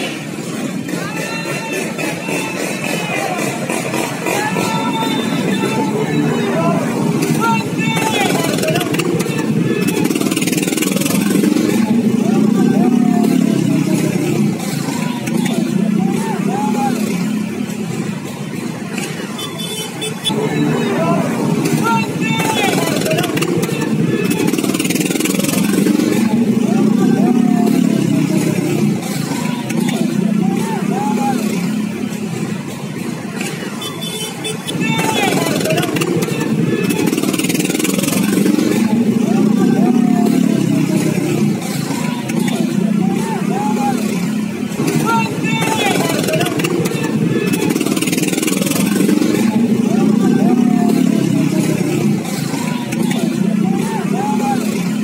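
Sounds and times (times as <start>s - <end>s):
motorcycle engines riding past: 0.0s - 55.0s
voices shouting: 0.0s - 55.0s.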